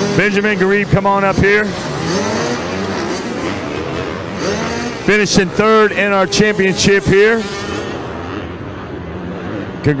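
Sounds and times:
motocross bike engines revving: 0.0s - 10.0s.

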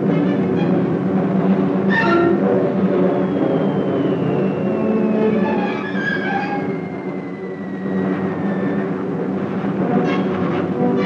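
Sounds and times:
aircraft engines droning: 0.0s - 11.0s
orchestral film music: 0.0s - 11.0s.

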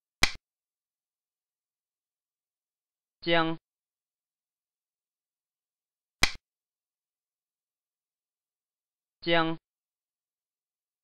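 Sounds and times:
game piece click: 0.2s - 0.4s.

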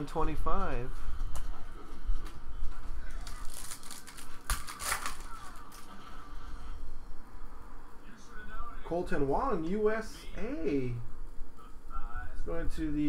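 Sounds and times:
cards being shuffled: 3.2s - 5.9s.

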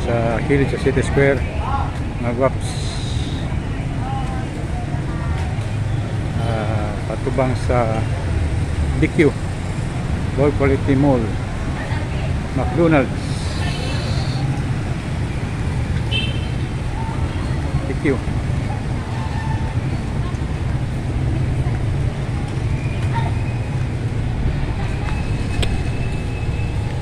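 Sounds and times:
motor tricycles and cars running: 0.0s - 27.0s.

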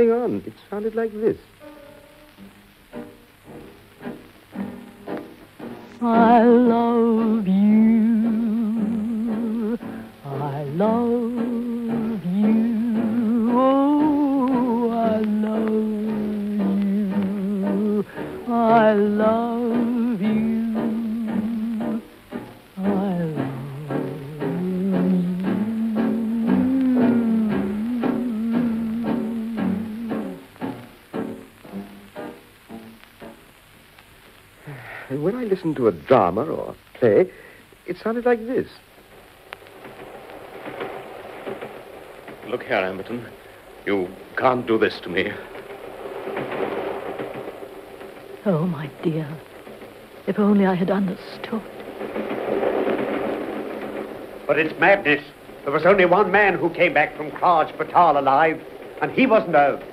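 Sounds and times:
crackling hiss: 0.0s - 59.9s
crooner singing love song: 5.9s - 30.6s.

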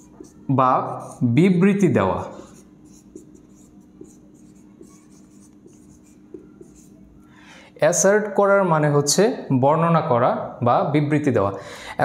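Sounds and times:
marker pen writing on whiteboard: 0.0s - 7.3s.

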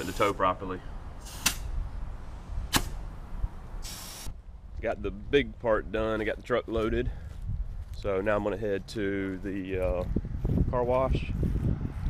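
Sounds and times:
air hissing from tire valve: 1.2s - 1.8s, 3.8s - 4.4s.

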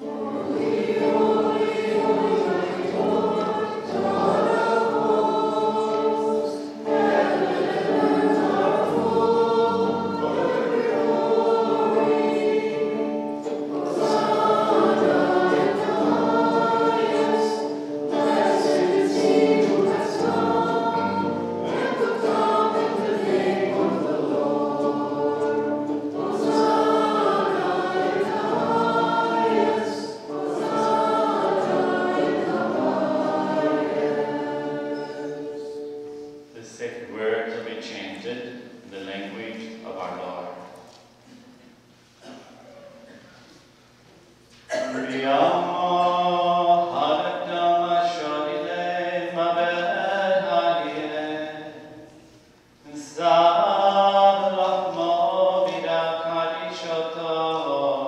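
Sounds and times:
church choir singing a hymn: 0.0s - 40.8s, 44.7s - 58.0s.

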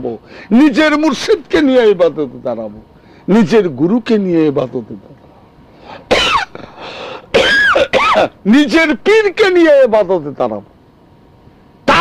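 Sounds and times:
breath: 0.2s - 0.5s, 3.0s - 3.3s, 5.7s - 7.3s
man coughing and clearing throat: 6.1s - 8.4s.

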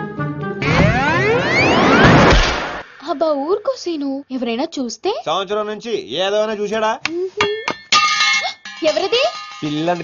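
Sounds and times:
metallic clang with ringing tail: 7.5s - 10.0s.

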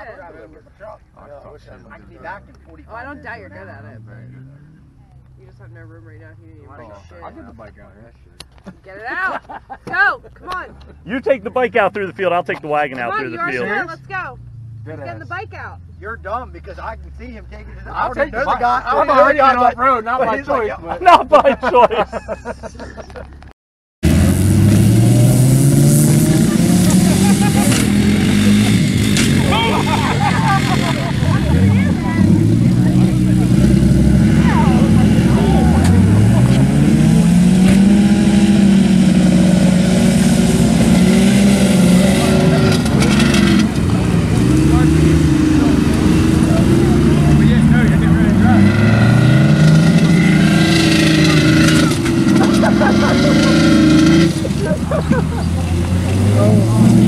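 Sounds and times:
voices: 0.0s - 23.4s, 26.0s - 57.0s
car engines revving: 0.0s - 57.0s.

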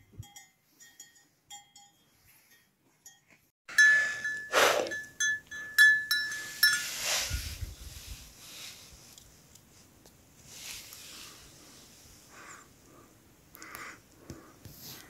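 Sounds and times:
bell ringing with clear tone: 0.0s - 7.0s
small metal bells clinking: 0.0s - 7.0s
wind buffeting the microphone: 7.2s - 8.4s.

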